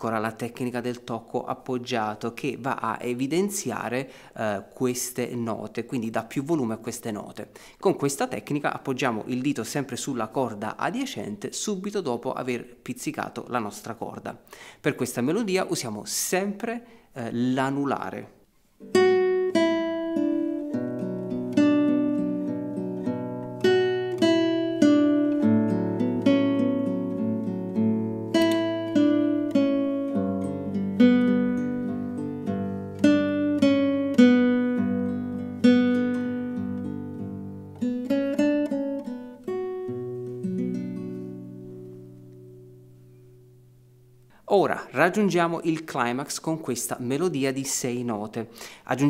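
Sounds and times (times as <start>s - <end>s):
classical guitar fingerpicked: 18.6s - 44.4s.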